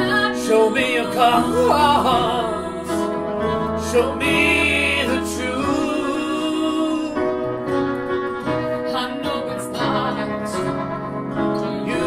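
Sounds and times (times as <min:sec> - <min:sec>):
upright piano: 0:00.0 - 0:12.0.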